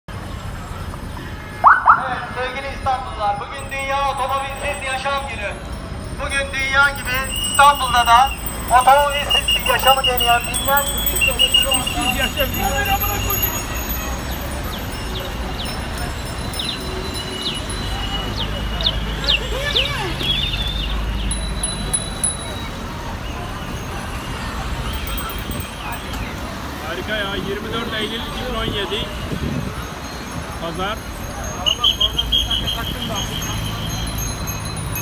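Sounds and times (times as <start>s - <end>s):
street traffic rumble: 0.1s - 35.0s
rising siren whoops: 1.6s - 2.2s
bicycle bells ringing: 1.6s - 26.8s, 29.8s - 35.0s.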